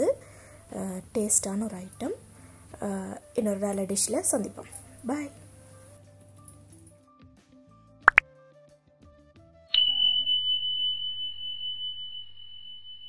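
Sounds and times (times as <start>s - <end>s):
soft background music: 0.0s - 9.8s
bright bell-like ding: 9.8s - 12.4s.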